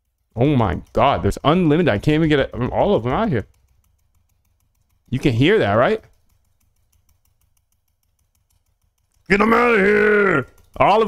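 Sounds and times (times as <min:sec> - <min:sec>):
faint rapid ticks: 0:00.0 - 0:11.0.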